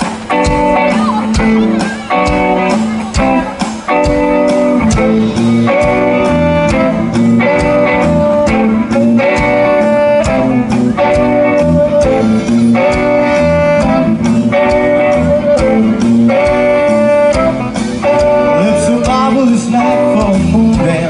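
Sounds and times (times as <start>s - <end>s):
electric bass: 0.0s - 21.0s
electric guitar: 0.0s - 21.0s
steady drumbeat: 0.0s - 21.0s
saxophone holding long notes: 4.6s - 18.8s.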